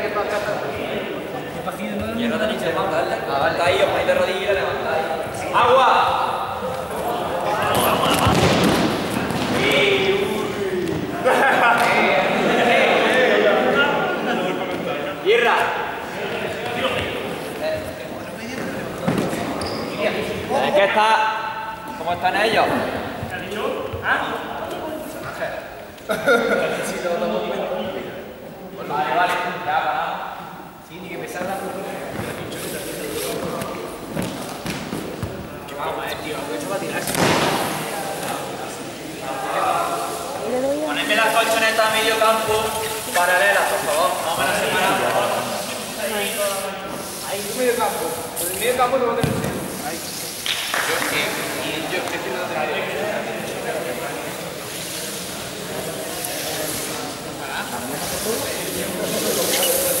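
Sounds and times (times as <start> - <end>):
people talking in echoing hall: 0.0 - 60.0
students chattering: 0.0 - 60.0.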